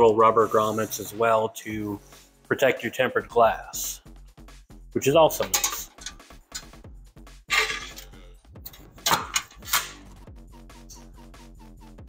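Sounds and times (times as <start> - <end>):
electronic music with steady beat: 3.7 - 12.0
hardware clattering on wooden workbench: 5.4 - 6.8, 7.5 - 8.1.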